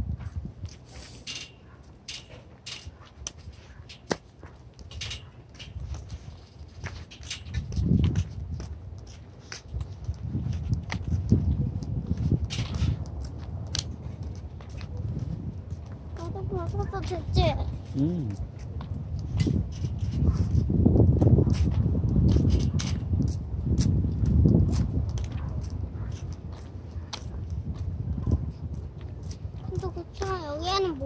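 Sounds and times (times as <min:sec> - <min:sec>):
wind rumbling on microphone: 0:00.0 - 0:31.0
person speaking: 0:16.2 - 0:18.5, 0:29.6 - 0:31.0.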